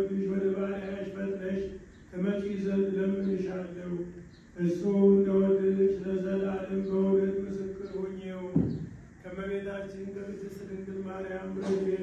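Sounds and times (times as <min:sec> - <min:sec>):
man chanting: 0:00.0 - 0:08.6, 0:09.2 - 0:12.0.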